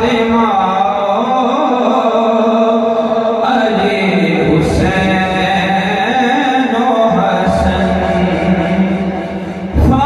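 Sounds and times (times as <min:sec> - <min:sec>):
man singing a devotional hymn: 0:00.0 - 0:10.0.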